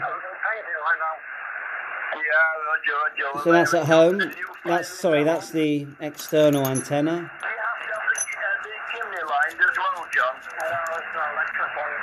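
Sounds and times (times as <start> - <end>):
distant voice over radio speaker: 0.0 - 1.2
radio band noise hiss: 0.0 - 12.0.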